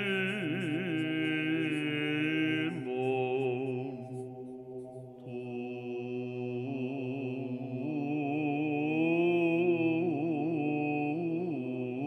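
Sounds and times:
solo voice chanting: 0.0 - 4.3
low vocal drone: 0.0 - 12.0.

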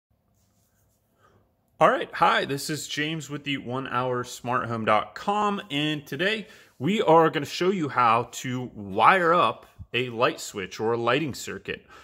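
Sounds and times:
man speaking: 1.8 - 12.0.

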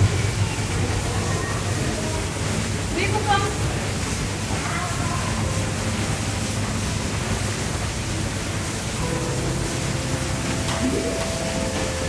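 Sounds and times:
steady rushing background noise: 0.0 - 12.0.

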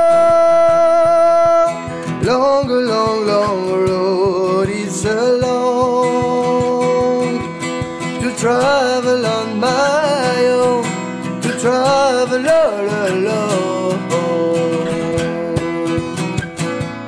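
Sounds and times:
man singing: 0.0 - 16.7
acoustic guitar strumming: 0.0 - 17.0.

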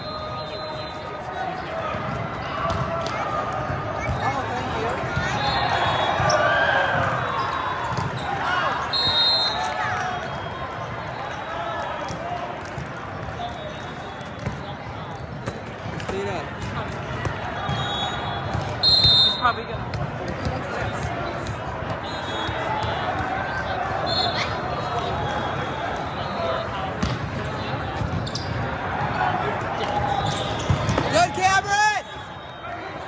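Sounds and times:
referee's whistle: 0.0 - 1.4, 5.2 - 11.5, 13.4 - 14.7, 17.6 - 19.7, 21.9 - 23.0, 23.9 - 26.7, 29.9 - 33.0.

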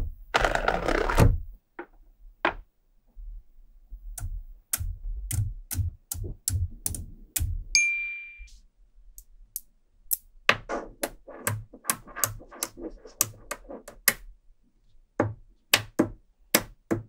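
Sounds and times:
magnetic balls clicking: 4.1 - 8.2
ringing ding: 7.8 - 8.5.

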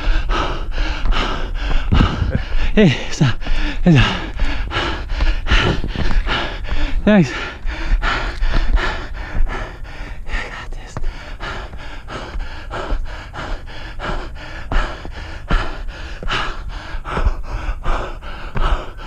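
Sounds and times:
footsteps on wooden steps: 0.0 - 19.0
runner breathing hard: 0.0 - 19.0.

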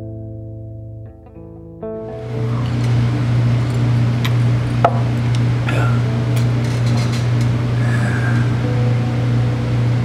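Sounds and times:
low electrical hum: 2.0 - 10.0.

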